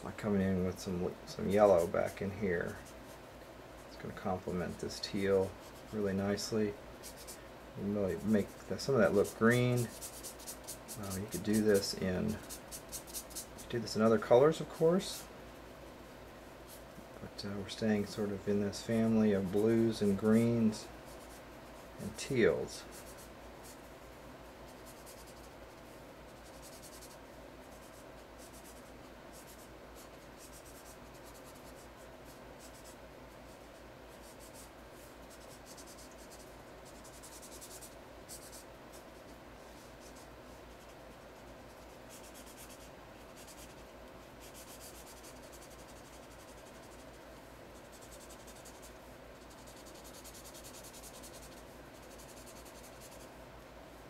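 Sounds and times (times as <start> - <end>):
felt-tip marker scratching paper: 8.1 - 13.8, 22.9 - 23.8, 24.7 - 53.3.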